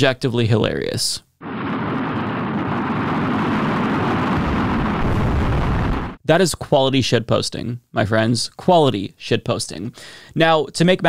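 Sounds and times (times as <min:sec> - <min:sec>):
rocket launch roar: 0:01.4 - 0:06.2.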